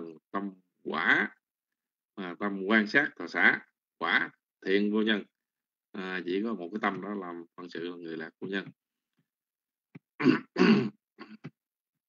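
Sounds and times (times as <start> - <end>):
person clearing throat: 10.2 - 11.6.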